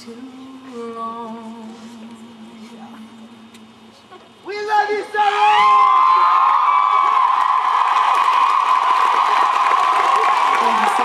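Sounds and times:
concert crowd cheering and whistling: 0:05.3 - 0:11.0.

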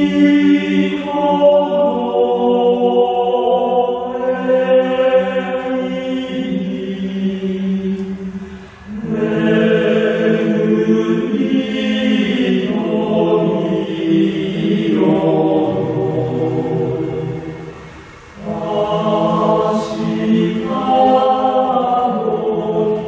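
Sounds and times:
male choir singing in harmony: 0:00.0 - 0:23.0.

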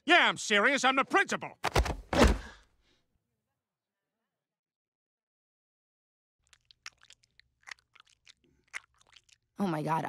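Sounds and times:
tongue licking and lapping: 0:06.4 - 0:09.6.

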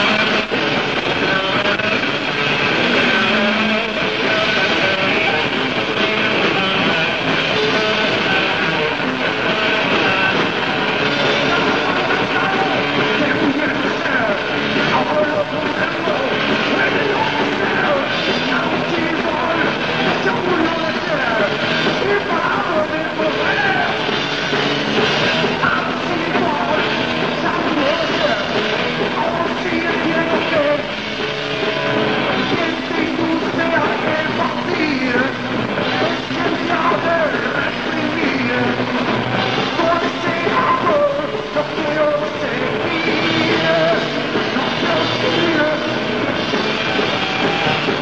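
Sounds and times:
heavy metal band playing live: 0:00.0 - 0:48.0.

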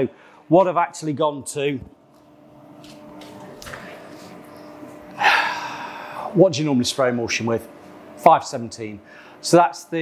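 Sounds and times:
extraction unit humming: 0:00.0 - 0:10.0
loud breathy huff: 0:05.2 - 0:06.3.

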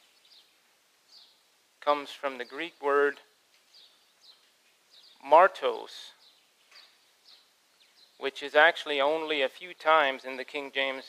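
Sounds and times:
man speaking: 0:01.8 - 0:03.3, 0:05.2 - 0:06.2, 0:08.2 - 0:11.0
faint bird chirps: 0:03.6 - 0:08.3.

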